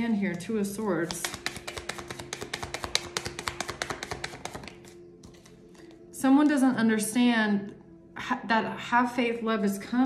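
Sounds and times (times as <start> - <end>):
cards being shuffled: 1.0 - 5.9.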